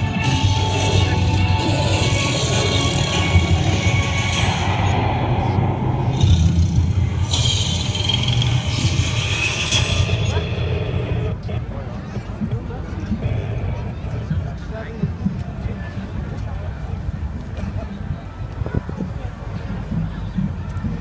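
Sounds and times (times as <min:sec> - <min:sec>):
music playing: 0:00.0 - 0:15.4
crowd voices: 0:00.0 - 0:21.0.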